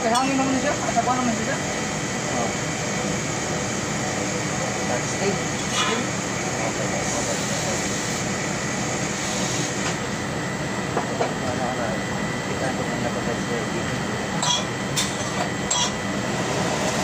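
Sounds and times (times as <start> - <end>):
machinery hum: 0.0 - 17.0.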